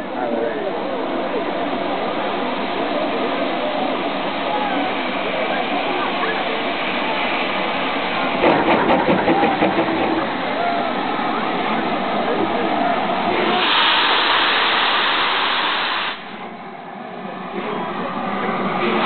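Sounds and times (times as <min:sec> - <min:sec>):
steam locomotive hissing steam: 0:00.0 - 0:16.5
sharp locomotive exhaust beats: 0:00.8 - 0:16.4.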